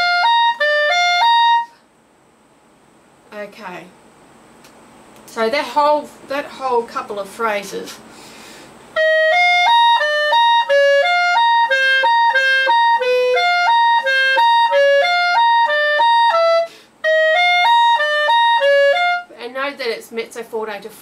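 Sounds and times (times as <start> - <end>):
clarinet playing fast run: 0.0 - 1.8, 8.9 - 19.3.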